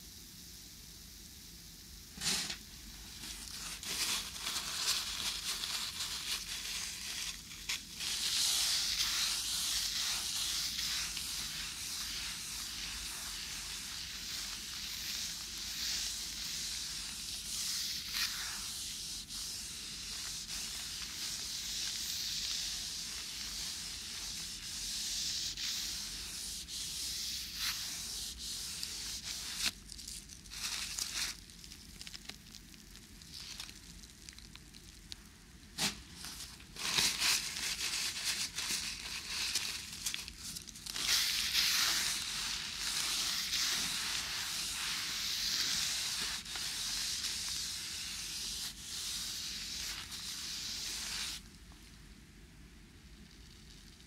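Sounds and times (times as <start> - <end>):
shower spraying water: 2.2 - 29.7
tissue paper rubbing on surface: 2.2 - 31.4, 35.8 - 51.5.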